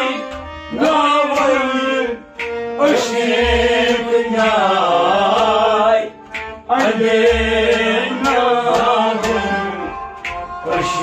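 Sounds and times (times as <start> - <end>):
man singing: 0.0 - 10.0, 10.6 - 11.0
bowed string instrument: 0.0 - 11.0
harmonium: 0.0 - 11.0.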